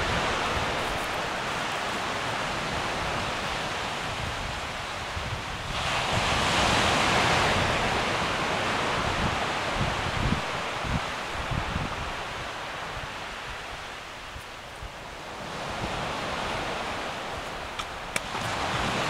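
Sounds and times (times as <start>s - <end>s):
wind buffeting microphone: 0.0s - 19.0s
wind gusting through undergrowth: 0.0s - 19.0s.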